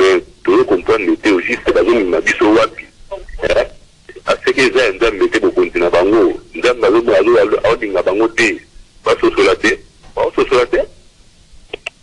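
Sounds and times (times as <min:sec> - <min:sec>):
person talking: 0:00.0 - 0:11.0.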